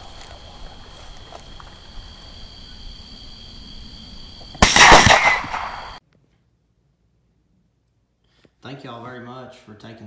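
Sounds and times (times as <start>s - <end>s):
loud gunshot: 4.6s - 6.0s.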